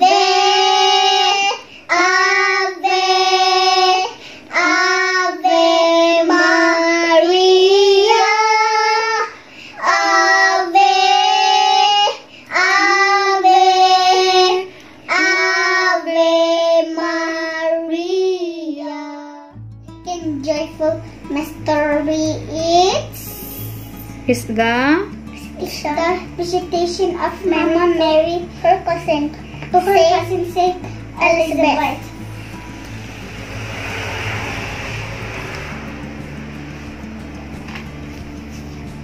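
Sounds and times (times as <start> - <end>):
children singing devotional song: 0.0 - 19.5, 20.1 - 23.5, 25.5 - 32.4
steady low hum: 19.6 - 39.0.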